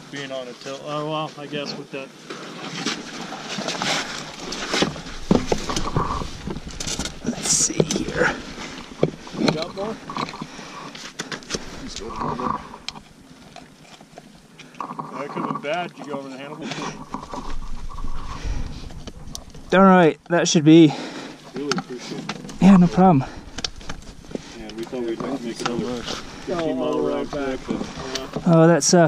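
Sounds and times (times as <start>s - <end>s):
rustling: 2.2s - 19.8s, 21.0s - 28.7s.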